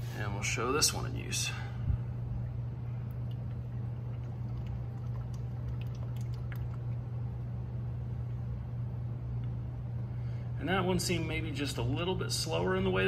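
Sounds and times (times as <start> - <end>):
steady low hum: 0.0 - 13.0
liquid glugs and splashes: 3.1 - 7.0
oil pouring into a funnel: 3.1 - 7.0.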